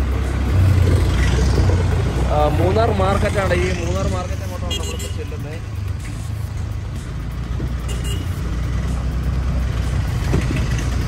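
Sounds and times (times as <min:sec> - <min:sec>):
vehicle rumbling in traffic: 0:00.0 - 0:11.0.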